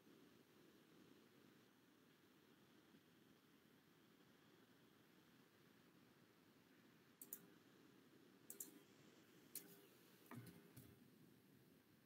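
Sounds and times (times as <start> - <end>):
computer mouse clicks: 7.2 - 7.6, 8.5 - 8.9, 9.5 - 11.0.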